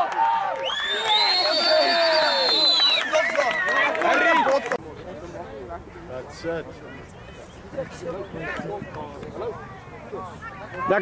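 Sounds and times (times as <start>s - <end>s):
spectators shouting and cheering: 0.0s - 4.8s.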